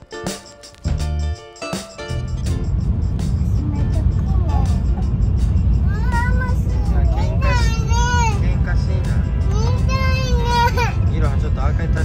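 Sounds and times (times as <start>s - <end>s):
train rumble inside cabin: 2.3s - 12.0s
child's voice: 3.4s - 5.2s, 5.8s - 8.6s, 9.5s - 11.1s.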